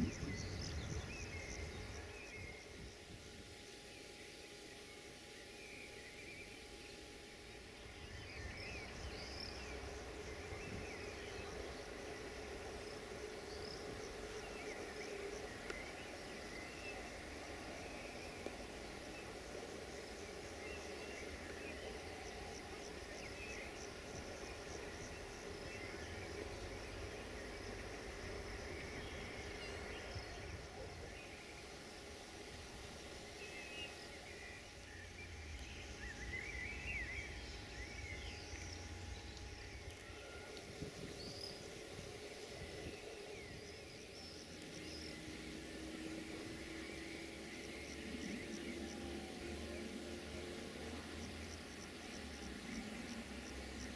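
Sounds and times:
insects chirping: 0:00.0 - 0:53.9.

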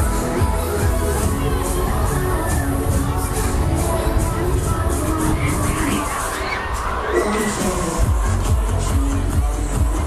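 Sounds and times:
crowd voices: 0:00.0 - 0:10.0
loud music with heavy bass: 0:00.0 - 0:10.0.

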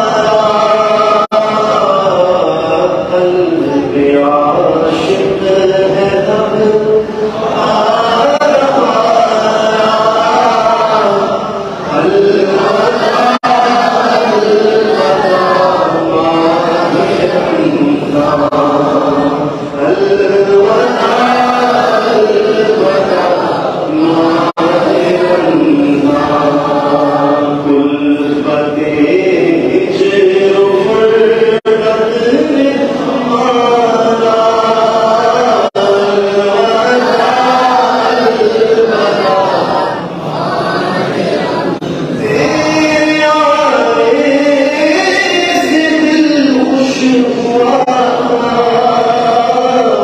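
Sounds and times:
man leading through a microphone: 0:00.0 - 0:39.4
group chanting without instruments: 0:00.0 - 0:50.0.

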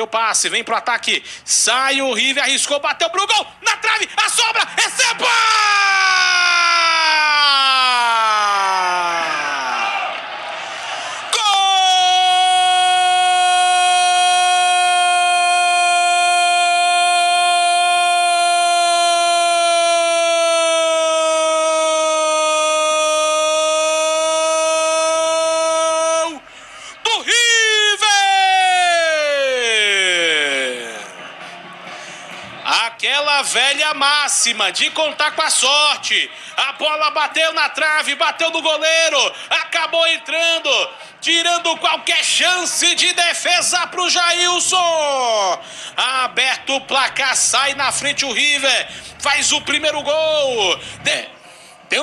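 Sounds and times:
radio narrator's drawn-out goal cry: 0:02.1 - 0:10.3, 0:11.0 - 0:31.0, 0:32.6 - 0:52.0.

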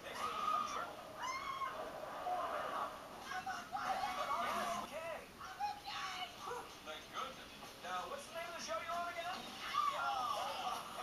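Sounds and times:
high-pitched meow-like cry: 0:00.6 - 0:01.8.

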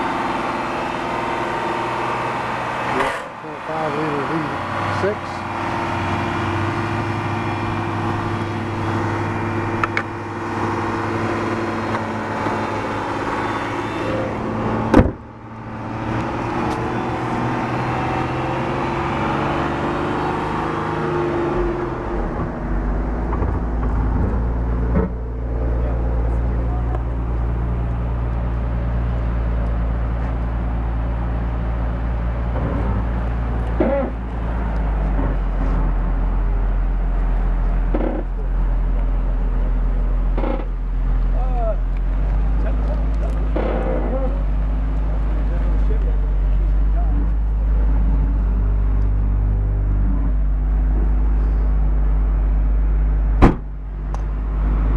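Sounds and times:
car engine idling: 0:00.0 - 0:54.9
sharp knock: 0:53.4 - 0:53.7.

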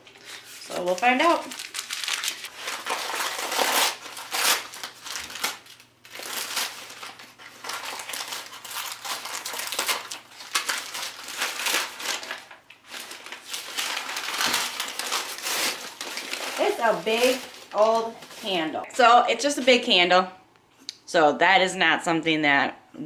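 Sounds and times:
newspaper crinkling and rustling: 0:00.0 - 0:18.8.

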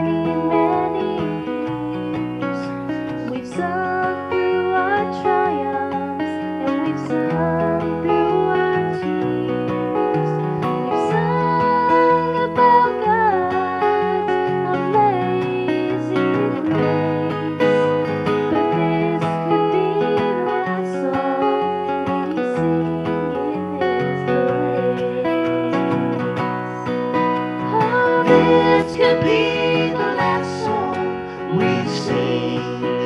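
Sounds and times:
acoustic guitar: 0:00.0 - 0:33.0
bass guitar: 0:00.0 - 0:33.0
young woman singing: 0:00.0 - 0:33.0.

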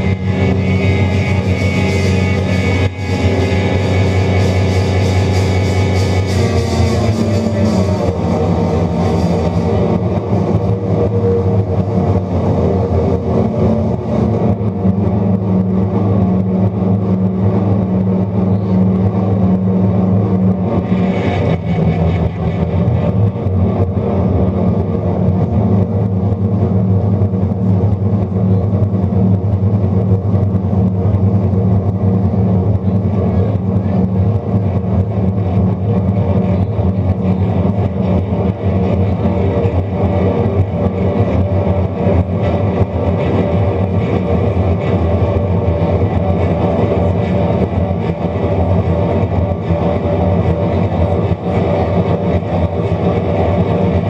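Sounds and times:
electric guitar: 0:00.0 - 0:54.0.

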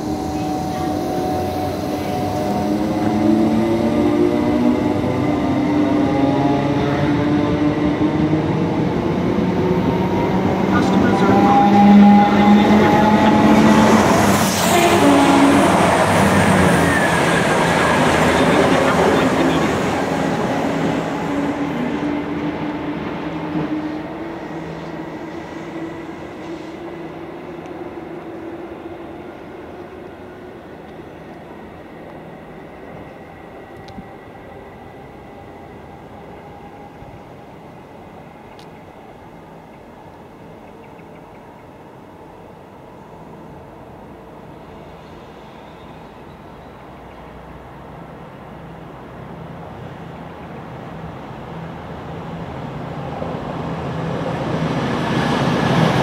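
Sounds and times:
diesel train passing: 0:00.0 - 0:56.0.

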